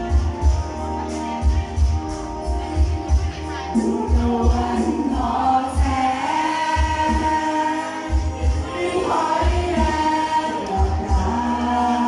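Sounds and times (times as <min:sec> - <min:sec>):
backing music with bass beat: 0:00.0 - 0:12.0
group singing into microphones: 0:02.7 - 0:12.0.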